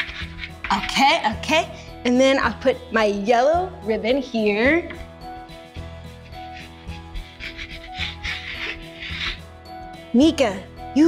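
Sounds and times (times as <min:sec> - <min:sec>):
chalk rubbing on chalkboard: 0:00.0 - 0:01.2, 0:04.9 - 0:09.5
background music: 0:00.0 - 0:11.0.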